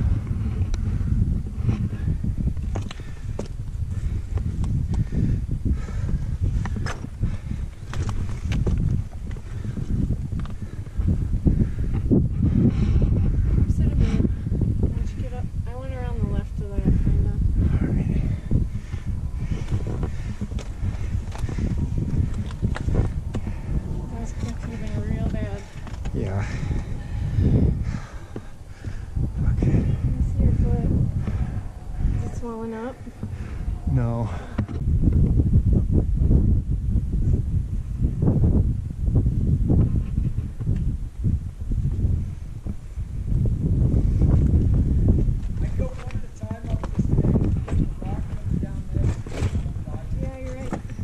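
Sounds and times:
wind rumbling on microphone: 0:00.0 - 0:51.0
person's voice: 0:24.1 - 0:26.6.

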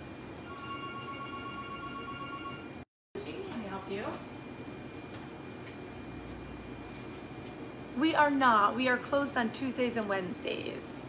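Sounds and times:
telephone ringing: 0:00.4 - 0:02.8.

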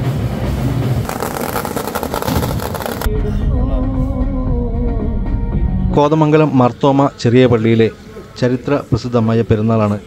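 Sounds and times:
firecrackers crackling: 0:01.1 - 0:03.1.

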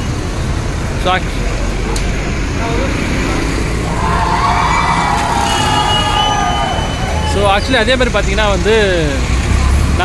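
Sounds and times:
bus engine rumbling: 0:00.0 - 0:10.0
street traffic: 0:00.0 - 0:10.0
crowd shouting and cheering: 0:03.8 - 0:08.2.

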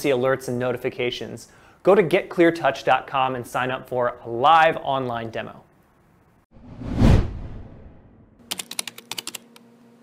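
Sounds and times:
whoosh with low boom: 0:06.5 - 0:08.4
keyboard typing clicks: 0:08.5 - 0:09.6.

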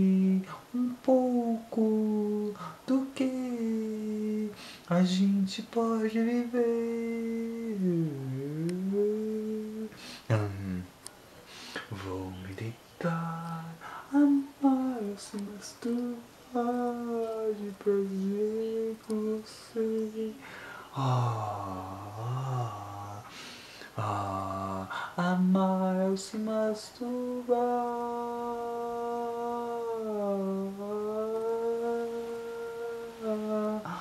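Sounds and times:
man humming a slow melody: 0:00.0 - 0:10.9, 0:11.8 - 0:23.3, 0:24.0 - 0:34.0.

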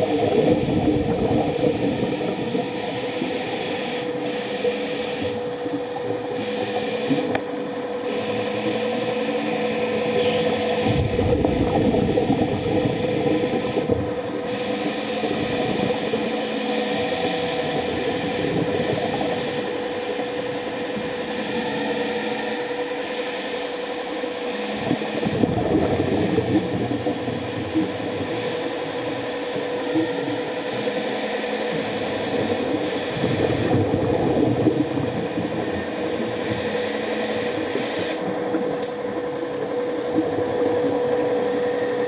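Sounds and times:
underwater thrusters whirring: 0:00.0 - 0:42.0.

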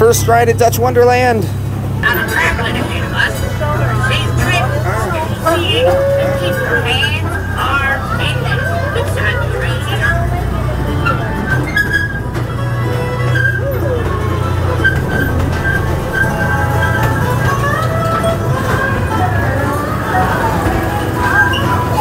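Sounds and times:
amusement park train rumbling: 0:00.0 - 0:22.0
indistinct voices: 0:00.0 - 0:22.0
music: 0:01.6 - 0:22.0.

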